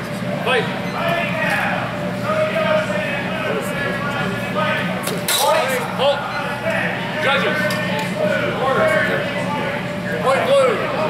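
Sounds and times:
voices talking in echoing hall: 0.0s - 11.0s.

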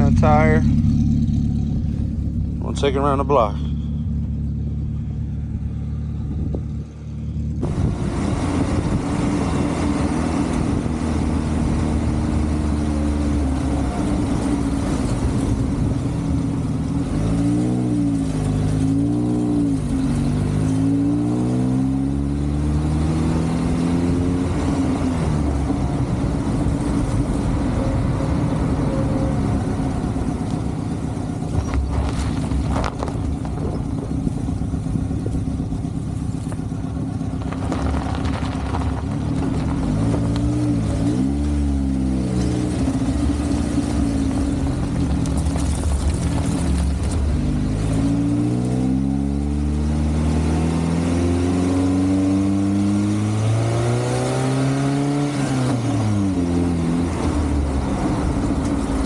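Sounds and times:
car engine running: 0.0s - 50.8s, 55.9s - 59.0s
road and wind noise: 0.0s - 59.0s.

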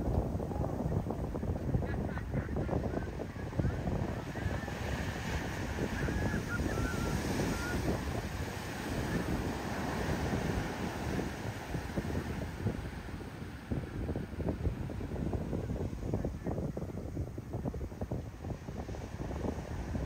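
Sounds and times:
surf crashing on sand: 0.0s - 20.0s
wind buffeting microphone: 0.0s - 20.0s.

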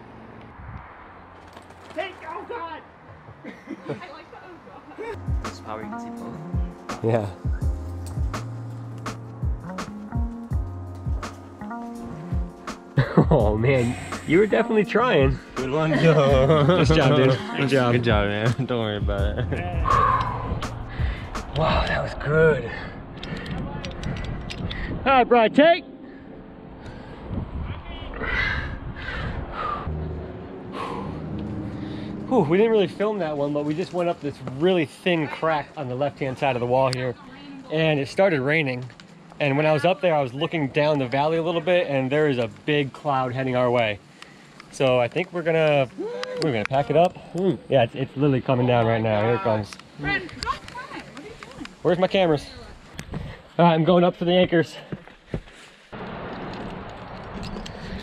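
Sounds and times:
rushing outdoor noise: 0.0s - 12.8s, 13.4s - 58.0s
bird cawing: 19.8s - 21.3s.

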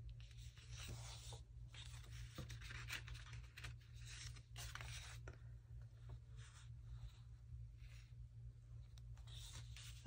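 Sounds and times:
low steady hum: 0.0s - 10.0s
paper sheets rustling: 0.3s - 5.4s, 9.2s - 10.0s.

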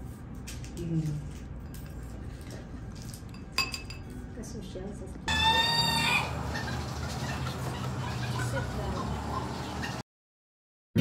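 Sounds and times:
outdoor background noise: 0.0s - 10.0s
breadstick clinking wine glass: 3.3s - 4.1s
chicken calling: 5.3s - 10.0s.

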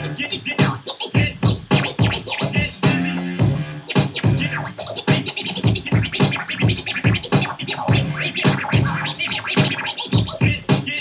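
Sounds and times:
record scratching on a turntable: 0.0s - 11.0s.

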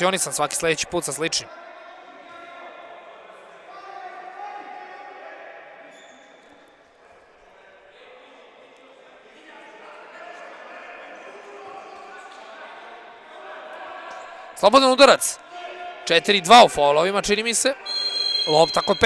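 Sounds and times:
players calling and shouting: 10.0s - 19.0s.

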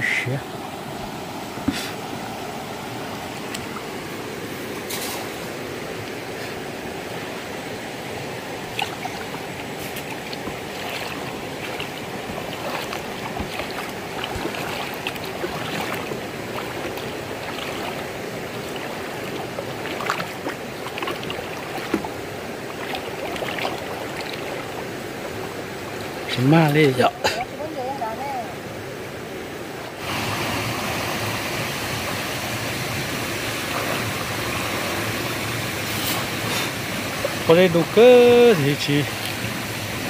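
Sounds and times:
stream flowing over rocks: 0.0s - 40.0s
splashes from wading: 6.4s - 27.6s.

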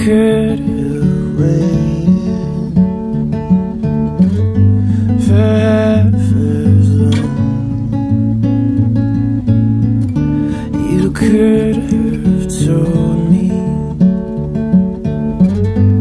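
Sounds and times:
acoustic guitar picked notes: 0.0s - 16.0s.

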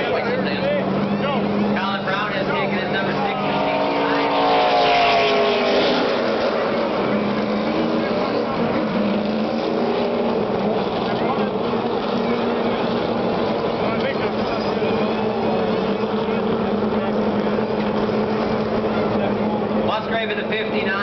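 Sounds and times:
race truck engines: 0.0s - 21.0s
truck passing close: 0.0s - 21.0s.

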